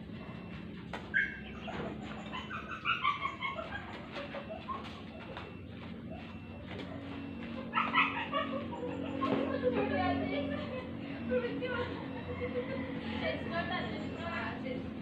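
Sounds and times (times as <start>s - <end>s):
bird calls: 0.2s - 9.7s.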